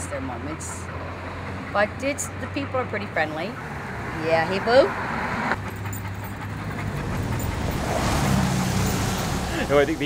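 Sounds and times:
cars driving past: 0.0 - 10.0.

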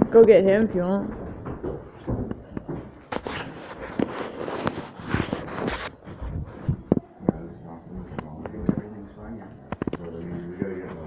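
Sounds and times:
knocks and rustles: 0.0 - 9.0
footsteps: 0.0 - 11.0.

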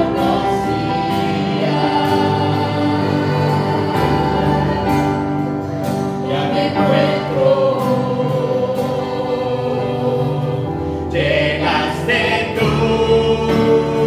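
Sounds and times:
acoustic guitar: 0.0 - 14.0
group singing a worship song: 0.0 - 14.0.

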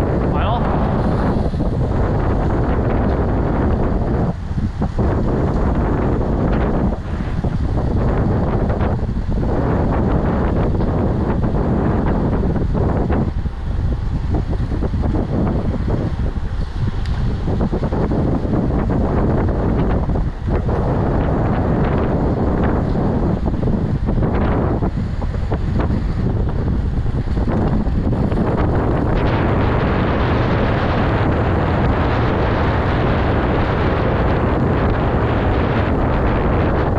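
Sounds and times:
wind roaring on microphone: 0.0 - 36.9.

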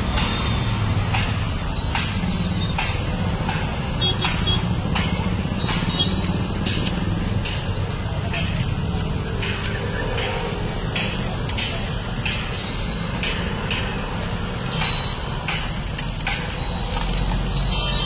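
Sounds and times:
low traffic rumble: 0.0 - 18.0
clicks on foil trays: 13.1 - 18.0.

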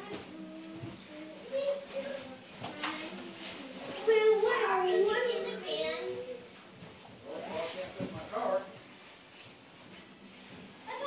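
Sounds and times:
child's voice: 0.0 - 6.5.

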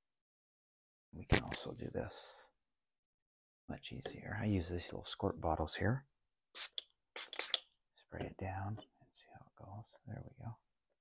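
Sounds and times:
spray bottle misting water: 6.6 - 7.6.

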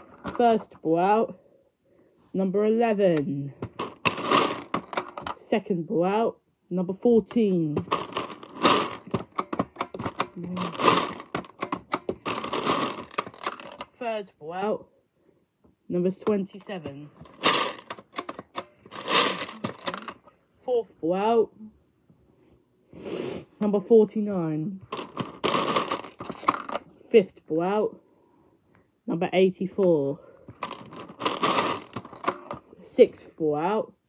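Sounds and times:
plastic balls rattling in dome: 3.6 - 5.4, 7.8 - 14.0, 16.6 - 20.3, 24.9 - 26.8, 30.5 - 32.7.

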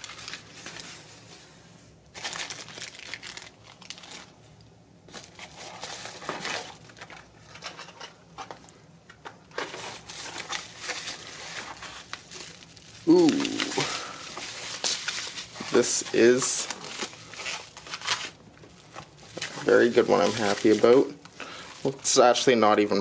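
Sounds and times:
bubble wrap crinkling: 0.0 - 1.3, 2.1 - 8.8, 9.4 - 23.0.

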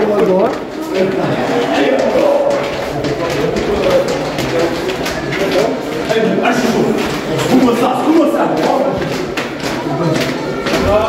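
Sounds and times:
men chanting together: 1.2 - 4.0.

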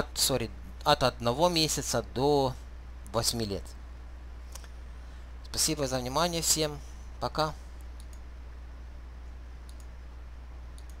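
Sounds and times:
steady low hum: 0.0 - 11.0
computer mouse clicks: 7.8 - 8.3, 9.6 - 10.0, 10.7 - 11.0.

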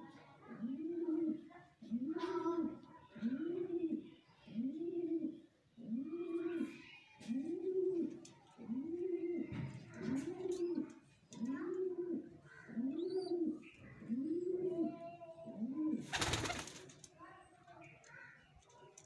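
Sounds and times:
pigeon cooing: 0.5 - 16.6.

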